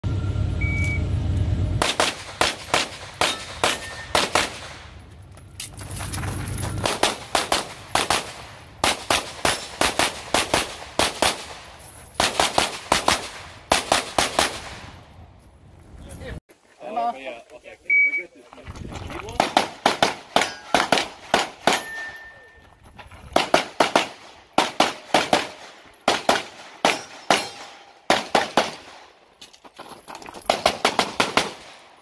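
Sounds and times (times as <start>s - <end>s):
handgun shots: 1.8s - 4.8s.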